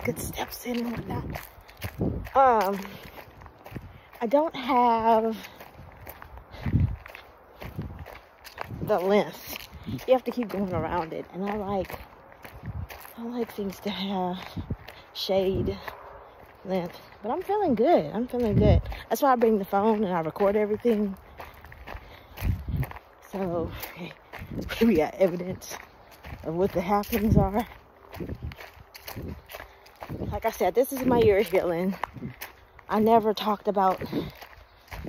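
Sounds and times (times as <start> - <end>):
footsteps on paved trail: 0.0 - 35.0.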